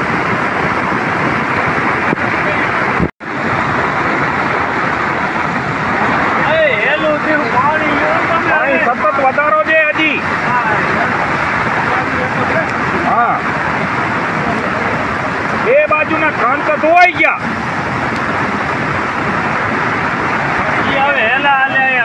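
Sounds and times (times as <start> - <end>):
floodwater rushing: 0.0 - 22.0.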